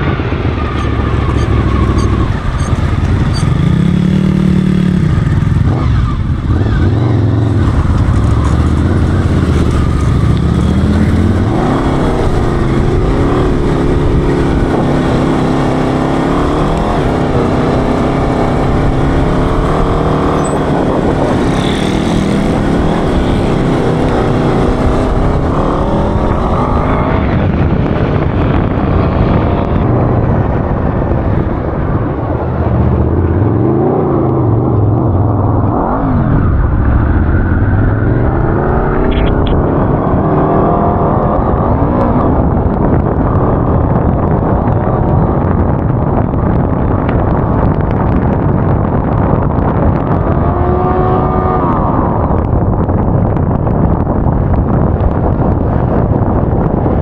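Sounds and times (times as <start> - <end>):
buggy engine running hard: 0.0 - 57.0.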